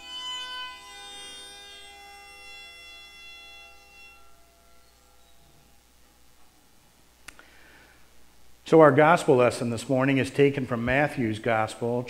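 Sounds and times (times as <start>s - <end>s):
hammered dulcimer chord ringing: 0.0s - 5.8s.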